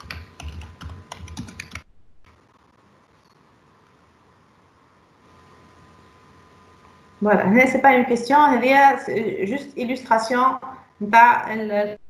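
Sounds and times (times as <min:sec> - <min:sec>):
keyboard typing: 0:00.0 - 0:02.5.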